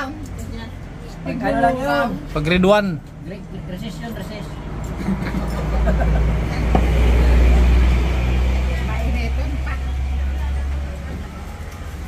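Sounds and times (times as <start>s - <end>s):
vehicle engine rumble: 2.2s - 12.0s
faint voices: 6.8s - 12.0s.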